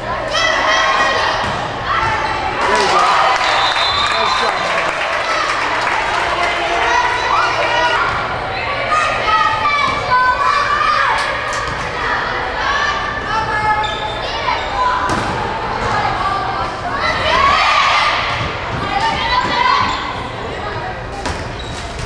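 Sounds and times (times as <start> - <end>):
people shouting in a gymnasium: 0.0 - 21.2.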